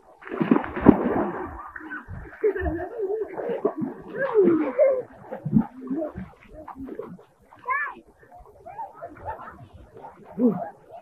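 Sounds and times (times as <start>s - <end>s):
people calling and squealing: 1.7s - 11.0s.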